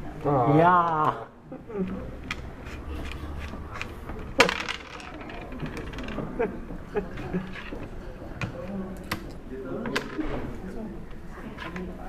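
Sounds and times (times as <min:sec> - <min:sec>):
game pieces clicking on wooden board: 0:02.3 - 0:06.4.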